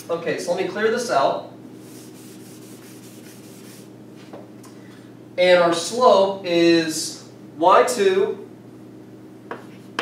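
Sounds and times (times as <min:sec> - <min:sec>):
eraser rubbing on chalkboard: 0:01.8 - 0:03.9.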